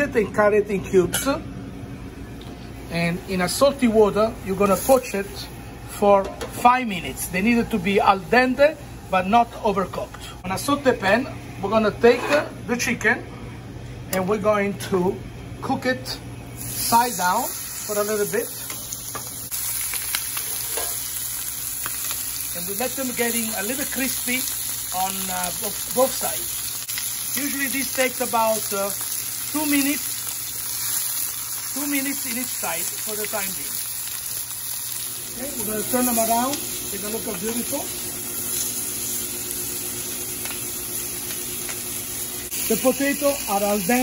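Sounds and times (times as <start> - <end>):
chicken sizzling in a pan: 2.8 - 5.6, 16.6 - 44.0.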